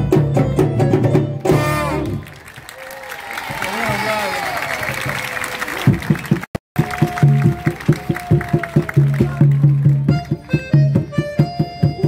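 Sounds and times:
live band dance tune: 0.0s - 2.2s, 5.7s - 12.0s.

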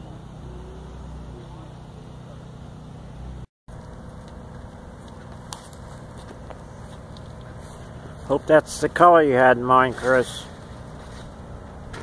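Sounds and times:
low engine-like hum: 0.0s - 12.0s.

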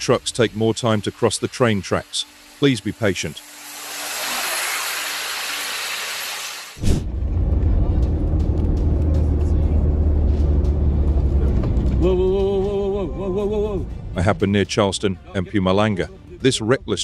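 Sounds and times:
steady hiss: 0.0s - 6.8s
car engine and road noise: 3.3s - 14.6s.

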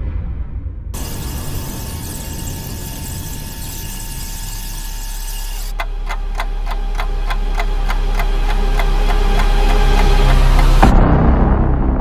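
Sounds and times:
low drone: 0.0s - 12.0s
sharp evenly spaced ticks: 1.0s - 10.9s.

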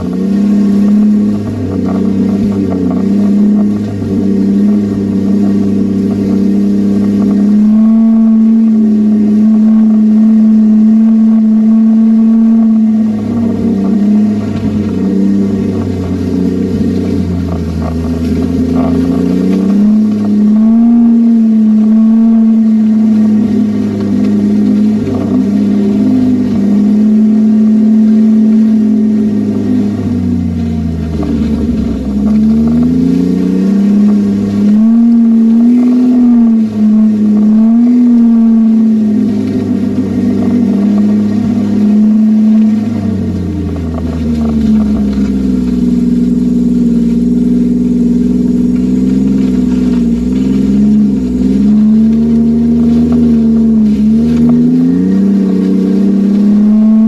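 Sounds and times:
snowmobile engine running: 0.0s - 57.0s.

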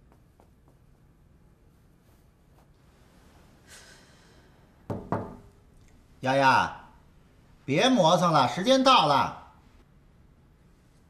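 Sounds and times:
knocks on a door: 4.9s - 5.4s.

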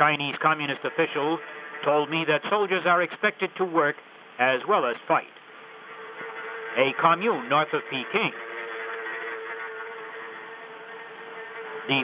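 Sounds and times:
steady buzzing drone: 0.0s - 12.0s.

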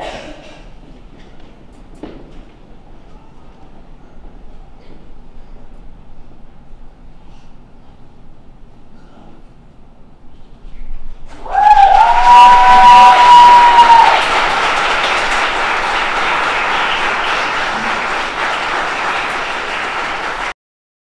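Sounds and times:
cheering: 11.3s - 20.5s
audience applause: 11.3s - 20.6s.

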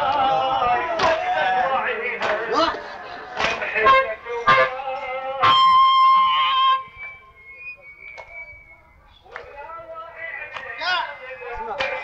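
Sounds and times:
man chanting mourning chant: 0.0s - 5.8s, 9.3s - 12.0s.

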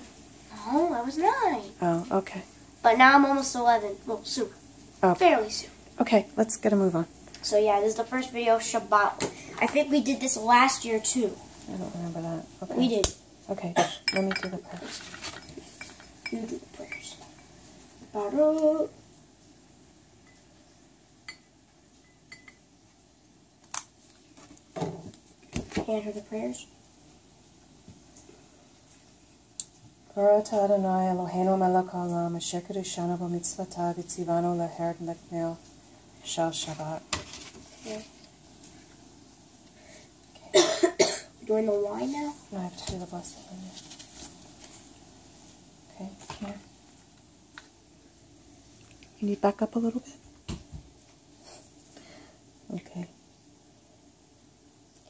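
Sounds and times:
low steady hiss: 0.0s - 55.0s.

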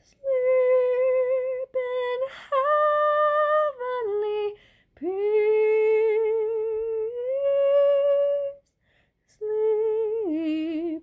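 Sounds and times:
woman singing a hymn unaccompanied: 0.0s - 8.7s, 9.3s - 11.0s.

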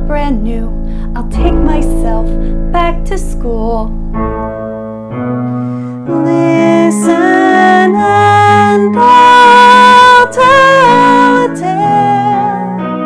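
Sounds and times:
woman singing: 0.0s - 4.0s, 6.0s - 13.0s
keyboard chords: 0.0s - 13.0s.

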